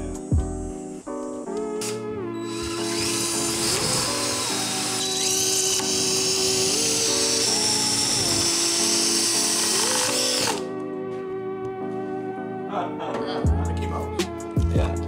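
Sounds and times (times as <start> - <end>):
background music: 0.0 - 15.0
cordless drill boring: 2.4 - 10.7.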